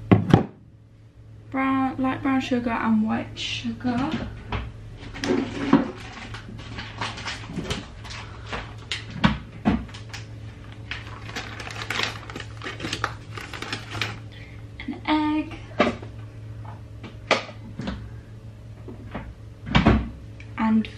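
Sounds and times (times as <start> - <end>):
steady low hum: 0.0 - 20.9.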